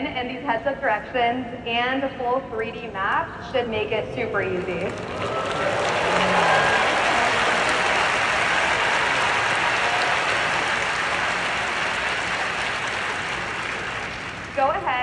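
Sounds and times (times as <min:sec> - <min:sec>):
audience applauding: 0:04.6 - 0:15.0.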